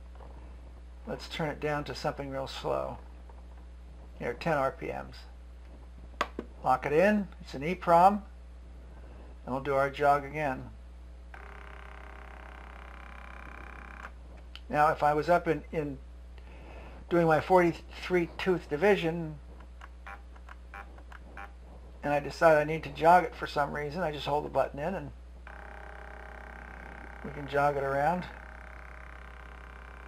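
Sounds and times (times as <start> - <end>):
stepper motor whine: 11.4 - 14.1, 25.4 - 30.0.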